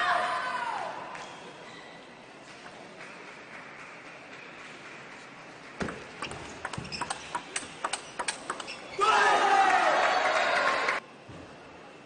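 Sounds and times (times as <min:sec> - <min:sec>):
faint hall background: 0:00.0 - 0:12.0.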